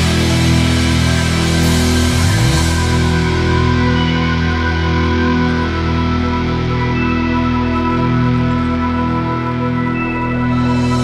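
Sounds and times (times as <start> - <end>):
symphonic metal music: 0.0 - 11.0.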